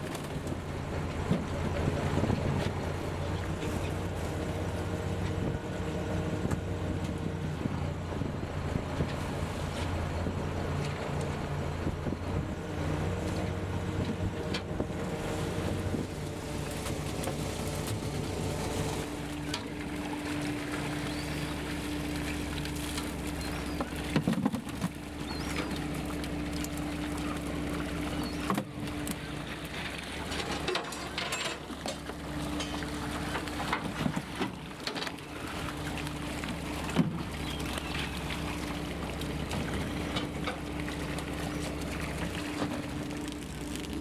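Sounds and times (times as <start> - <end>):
boat engine running: 0.0 - 44.0
water noise: 0.0 - 44.0
wind: 0.0 - 44.0.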